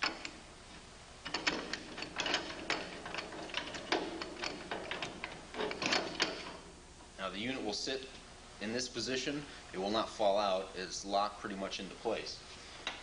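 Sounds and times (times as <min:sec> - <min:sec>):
metal clicks clanks and scrapes: 0:00.0 - 0:00.4, 0:01.2 - 0:06.7.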